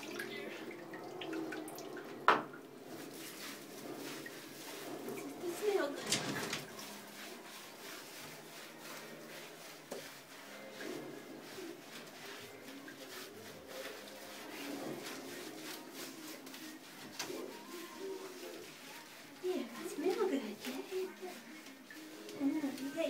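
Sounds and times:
water splashing: 0.0s - 23.0s
hands rubbing wet fur: 2.8s - 23.0s.

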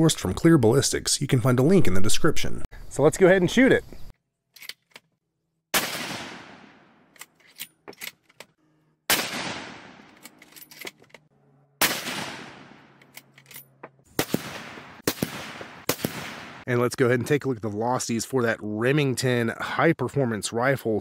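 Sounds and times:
rifle shots with echo: 5.7s - 7.0s, 9.1s - 10.2s, 11.8s - 13.0s, 14.2s - 16.6s.

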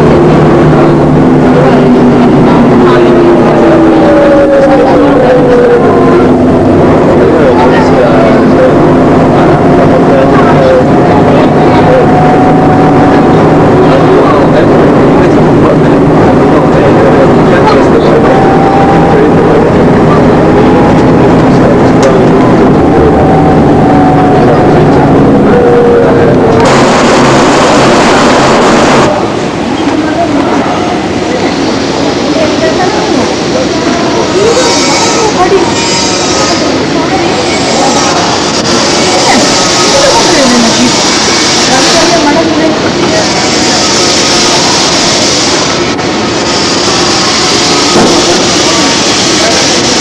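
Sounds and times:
bus engine running: 0.0s - 50.0s
road and wind noise: 0.0s - 50.0s.

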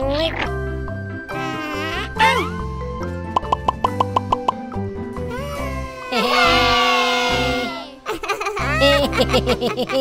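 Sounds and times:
cheerful children's music: 0.0s - 10.0s
pitched plop sound effects: 3.4s - 4.6s.

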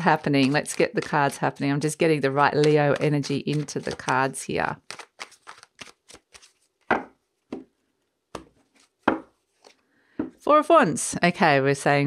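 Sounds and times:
cards being shuffled: 0.0s - 1.5s, 2.3s - 7.6s, 8.4s - 9.8s.

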